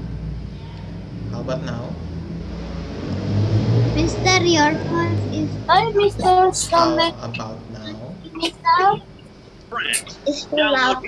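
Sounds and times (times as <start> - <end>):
low hum on call audio: 0.0 - 3.2, 3.9 - 11.0.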